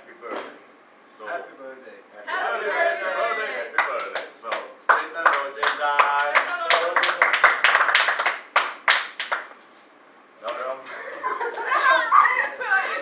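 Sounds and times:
group clapping: 3.7s - 9.6s, 10.4s - 11.7s.

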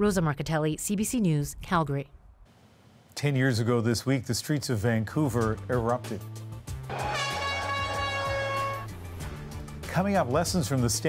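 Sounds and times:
low background music: 3.9s - 11.0s
loud horn tone: 6.9s - 9.0s.

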